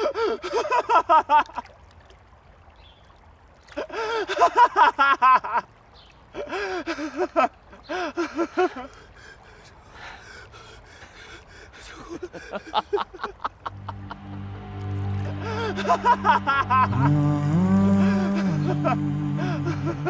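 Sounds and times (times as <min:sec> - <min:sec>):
man's strained cries and gasps: 0:00.0 - 0:00.7, 0:18.0 - 0:20.0.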